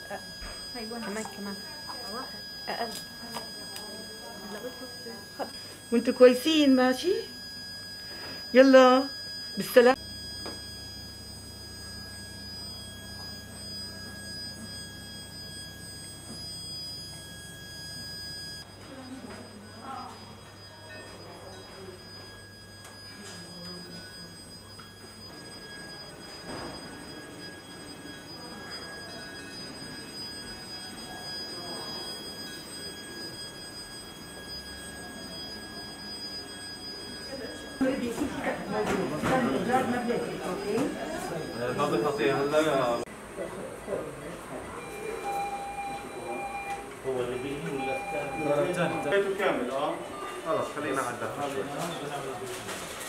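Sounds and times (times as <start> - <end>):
high-pitched electronic tones: 0.0 - 43.1, 44.7 - 50.3
faint indistinct voices: 18.7 - 53.0.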